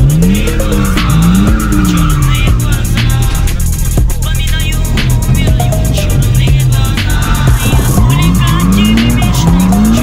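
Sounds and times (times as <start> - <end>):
car engine revving: 0.0 - 10.0
music playing: 0.0 - 10.0
tyres squealing: 0.1 - 4.0, 5.0 - 10.0.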